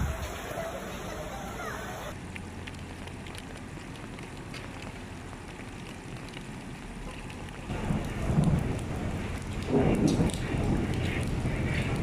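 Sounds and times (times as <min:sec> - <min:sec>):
rain on standing water: 0:00.0 - 0:12.0
low rumble: 0:07.7 - 0:12.0.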